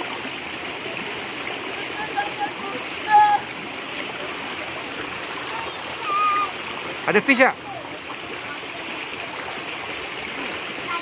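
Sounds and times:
stream water rushing: 0.0s - 11.0s
voices calling out: 1.6s - 9.8s.

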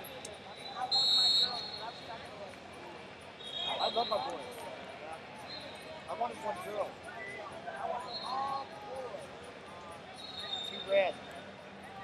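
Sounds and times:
arena crowd chatter: 0.0s - 12.0s
faint high whistle tone: 0.5s - 2.1s, 3.4s - 4.4s, 5.4s - 5.9s, 7.1s - 8.7s, 10.2s - 11.4s
shrill whistle blast: 0.6s - 1.9s.

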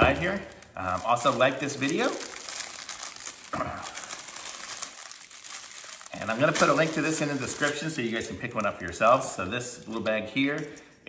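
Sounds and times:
plastic bag crinkling: 0.0s - 10.8s.

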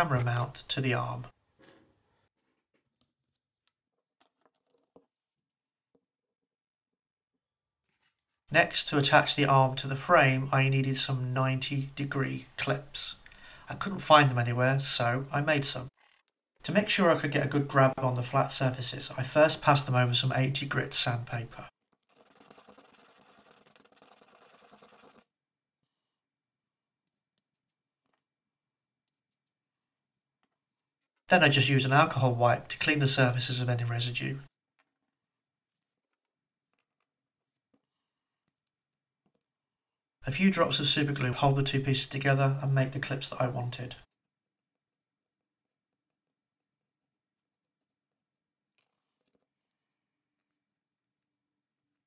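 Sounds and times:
plastic scratching on sandpaper: 21.9s - 25.3s.

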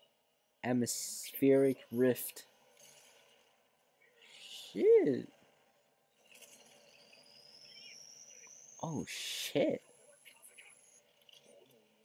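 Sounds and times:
thin high-pitched whine rising: 6.2s - 11.2s.

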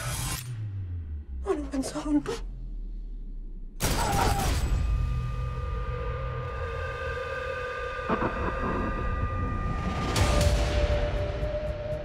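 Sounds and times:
deep rumble: 5.4s - 12.0s
loud cinematic hits: 8.0s - 11.2s.

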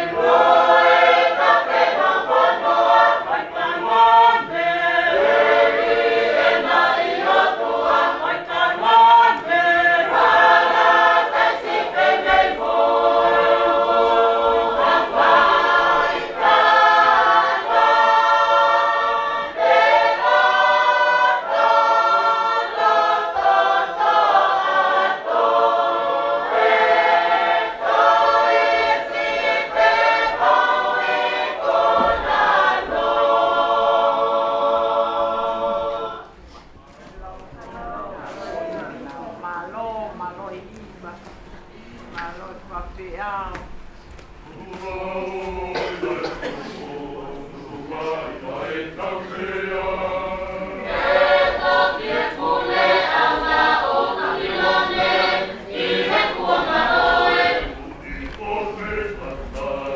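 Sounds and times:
choir singing a hymn: 0.0s - 36.7s, 44.4s - 59.9s.

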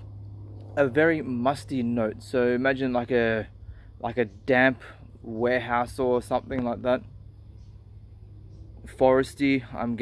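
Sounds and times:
faint low background hum: 0.0s - 10.0s.

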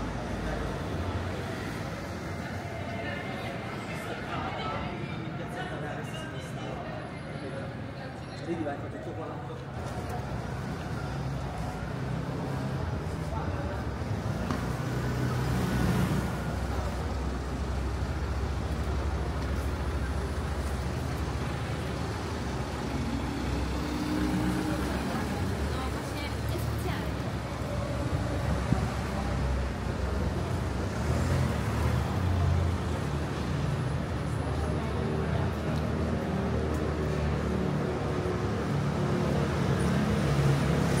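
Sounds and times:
passers-by talking: 0.0s - 41.0s
slow motor traffic: 0.0s - 41.0s.

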